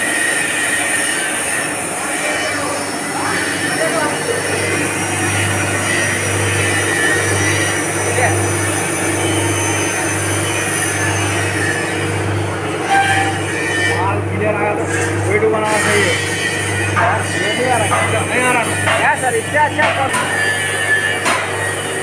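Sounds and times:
rotating drum roaster rumbling: 0.0s - 22.0s.

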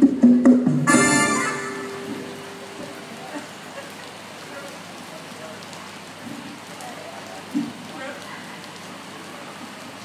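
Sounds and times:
steady hiss: 0.9s - 10.0s.

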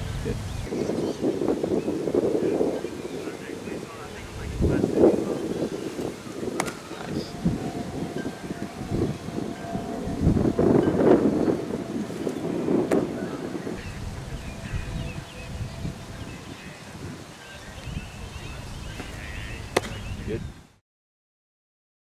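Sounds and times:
wind buffeting microphone: 0.0s - 20.8s
baseball smacking into mitt: 6.6s - 6.8s, 19.0s - 20.0s.

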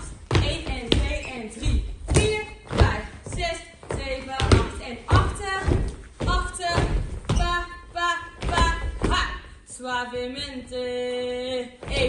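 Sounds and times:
dance steps thudding on floor: 0.0s - 9.6s, 11.8s - 12.0s.

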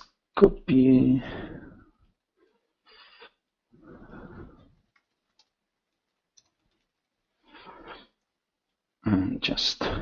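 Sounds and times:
computer keyboard keystrokes: 4.9s - 5.6s, 6.3s - 6.9s.

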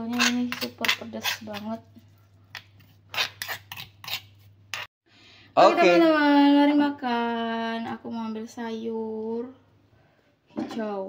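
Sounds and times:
metal spoon scraping stone mortar: 0.0s - 4.9s.

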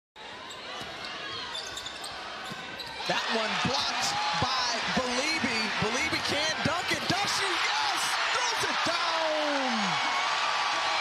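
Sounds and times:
arena crowd noise: 0.2s - 11.0s.

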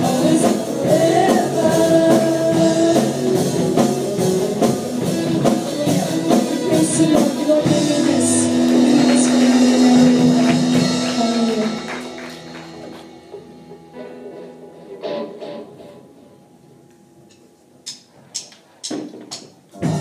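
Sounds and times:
worship band holding a chord: 0.0s - 16.7s.

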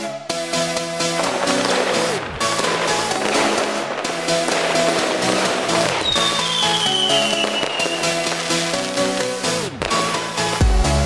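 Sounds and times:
electronic dance music: 0.0s - 11.0s
firework bangs and crackling: 0.0s - 11.0s.

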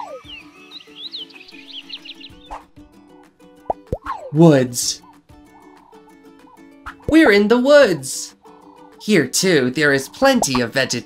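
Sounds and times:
rapid high bird chirps: 0.0s - 2.8s
soft background music: 0.0s - 11.0s.

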